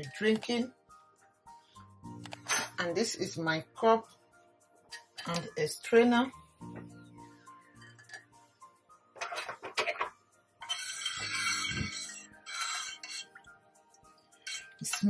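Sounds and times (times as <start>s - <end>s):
light background music: 0.0s - 15.0s
metal pot clinking on glass mug: 7.8s - 8.3s, 9.2s - 13.4s, 14.4s - 15.0s.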